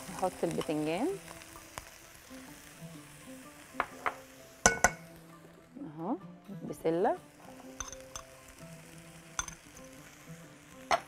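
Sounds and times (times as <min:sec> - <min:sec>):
soft background music: 0:00.0 - 0:11.0
metal spoon clinking glass bowl: 0:04.7 - 0:05.0, 0:07.8 - 0:08.3.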